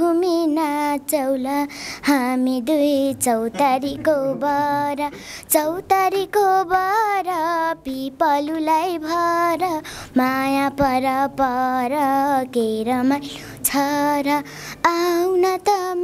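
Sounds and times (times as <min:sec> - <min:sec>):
girl singing folk song: 0:00.0 - 0:16.0.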